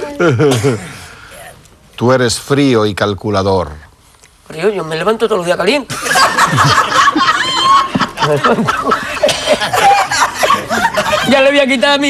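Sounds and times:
people laughing: 5.9s - 11.8s.

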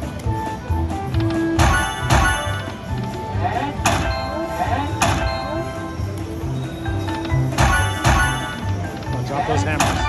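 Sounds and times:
slot machine game music: 0.0s - 10.0s.

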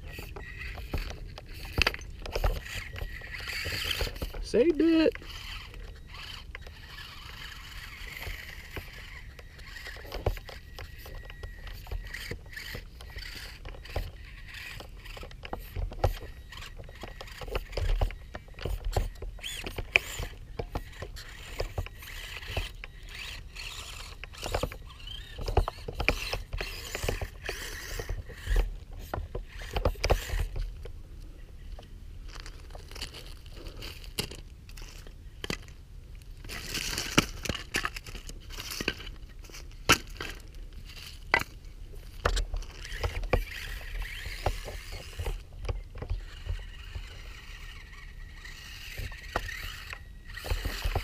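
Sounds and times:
small electric motor whirring: 0.0s - 30.9s, 32.3s - 35.7s, 36.4s - 51.0s.

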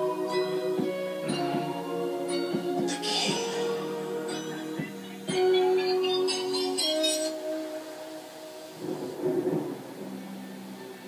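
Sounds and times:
held song note: 0.0s - 10.4s
thunder rumble: 2.6s - 11.0s.

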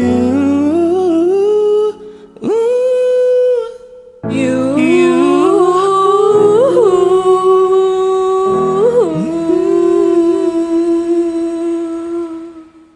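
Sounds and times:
person singing a long note: 0.0s - 12.9s
soft backing music: 4.2s - 12.1s.

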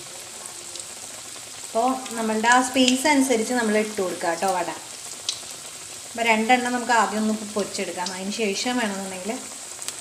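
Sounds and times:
patties sizzling in hot oil: 0.0s - 10.0s
woman talking: 1.8s - 4.8s, 6.2s - 9.5s.

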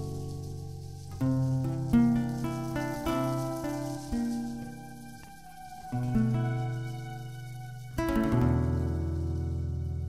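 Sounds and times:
acoustic guitar plucked notes: 0.0s - 10.0s.

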